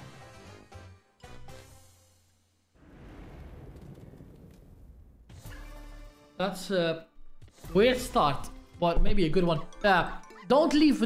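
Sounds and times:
low rumbling sound effect: 2.8 - 5.4.

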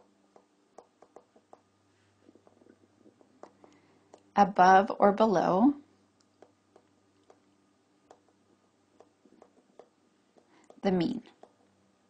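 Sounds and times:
stylus tapping on tablet screen: 0.0 - 4.4, 6.2 - 11.8
faint low hum: 0.0 - 12.0.

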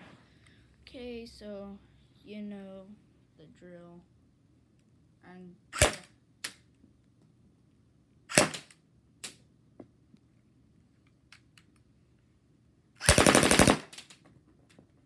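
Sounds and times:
toy gun automatic burst: 5.8 - 6.1, 8.3 - 8.7, 13.0 - 14.2
toy pistol shots: 5.8 - 6.6, 8.3 - 9.4, 13.0 - 14.2.

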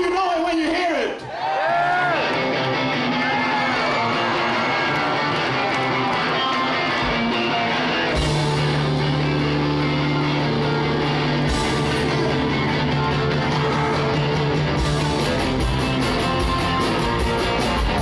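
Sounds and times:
live rock band: 1.8 - 18.0.

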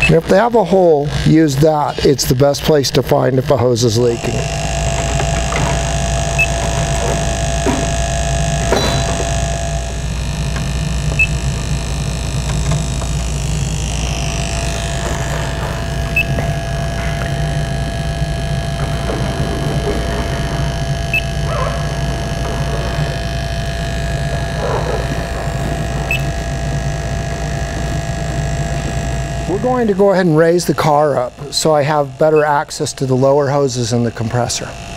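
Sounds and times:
pump hum and whine: 0.0 - 34.9.

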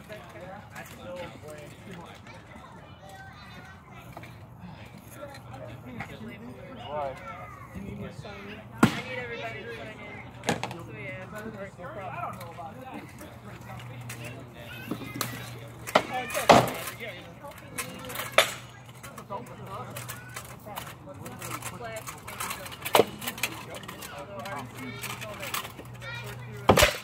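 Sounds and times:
practice swords striking shields: 15.9 - 16.8, 26.7 - 27.0.

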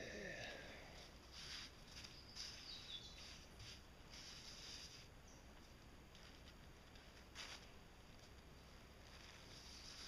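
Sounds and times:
bird chirp: 1.9 - 3.5, 5.2 - 5.6.

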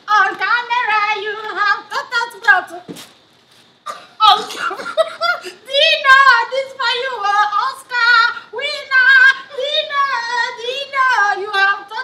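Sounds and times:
woman making wordless cries: 3.9 - 6.1.

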